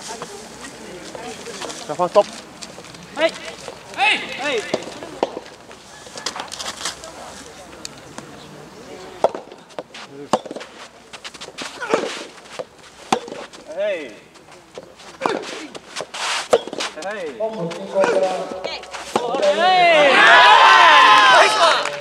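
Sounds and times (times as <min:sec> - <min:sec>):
players shouting: 0:03.2 - 0:05.1, 0:18.0 - 0:22.0
rackets striking rubber ball: 0:09.2 - 0:09.6, 0:10.3 - 0:10.7, 0:11.8 - 0:13.6, 0:18.0 - 0:19.6.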